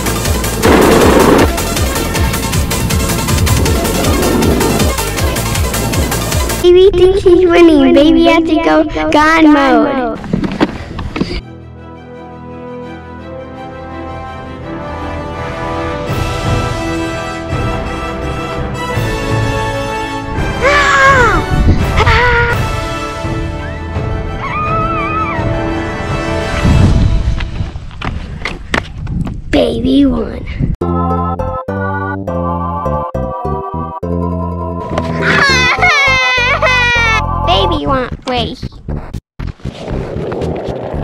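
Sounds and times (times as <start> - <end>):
wind on microphone: 2.7 - 4.9, 21.2 - 22.6, 26.5 - 30.8, 39.6 - 41.0
boy speaking: 6.6 - 10.2, 29.5 - 30.7, 37.4 - 38.8
background music with held notes: 11.4 - 20.6, 30.8 - 37.9
boy laughing: 21.7 - 22.6, 35.0 - 37.3.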